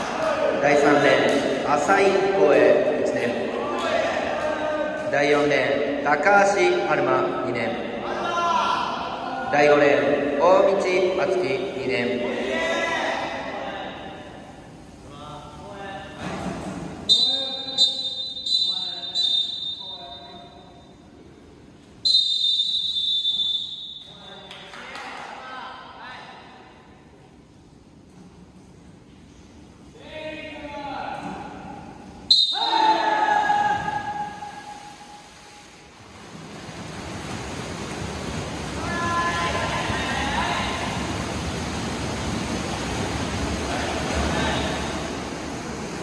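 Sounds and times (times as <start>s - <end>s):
swimmers splashing water: 0.0s - 20.6s, 31.2s - 46.0s
referee's whistle long blast: 17.1s - 20.6s, 22.0s - 24.2s, 32.3s - 33.2s.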